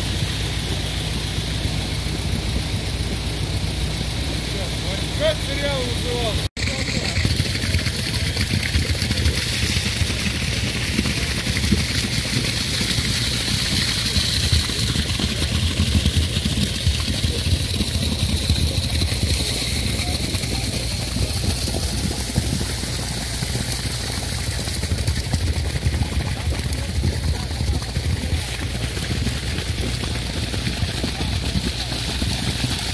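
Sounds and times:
concrete pouring down chute: 0:00.0 - 0:32.9
diesel engine droning: 0:00.0 - 0:32.9.

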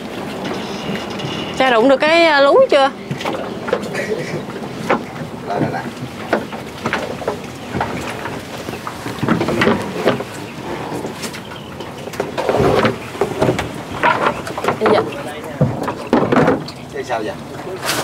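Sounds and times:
rustling of water plants: 0:00.0 - 0:18.0.

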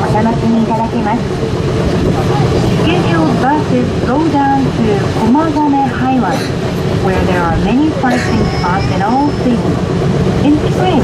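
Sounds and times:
cable car cabin running noise: 0:00.0 - 0:11.0
recorded announcement over speaker: 0:02.2 - 0:09.8, 0:10.4 - 0:11.0.

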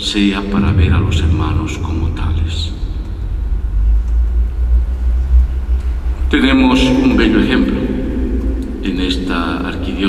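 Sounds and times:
loud deep rumble: 0:00.4 - 0:10.0.

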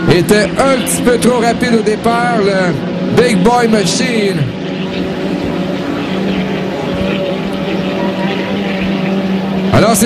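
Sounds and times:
racing boat engine drone: 0:00.0 - 0:10.0.

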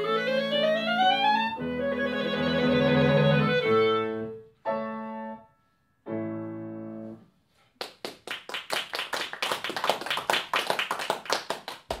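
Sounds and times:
small audience clapping: 0:07.7 - 0:12.0.

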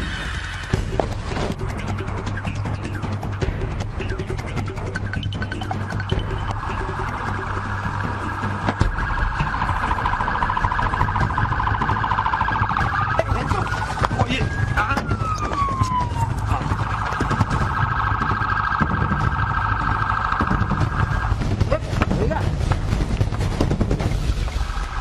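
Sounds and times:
police siren warbling: 0:00.0 - 0:22.7.

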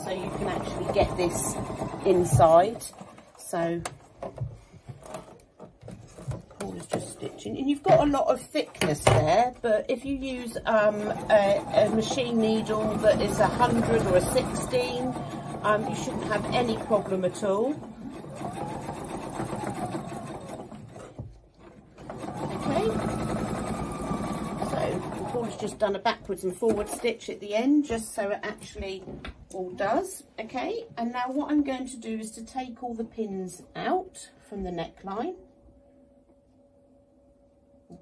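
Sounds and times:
sewing machine stitching: 0:00.0 - 0:03.7, 0:10.3 - 0:26.0.

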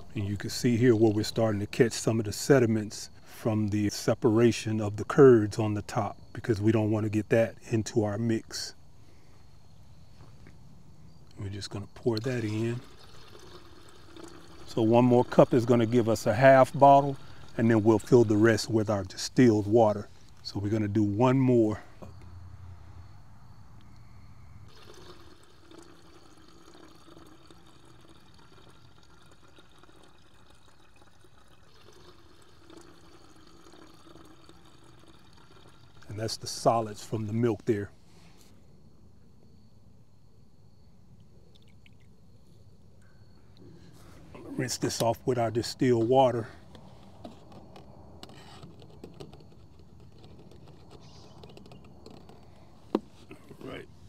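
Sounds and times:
liquid trickling: 0:11.3 - 0:21.0, 0:24.7 - 0:37.4, 0:44.4 - 0:47.8.

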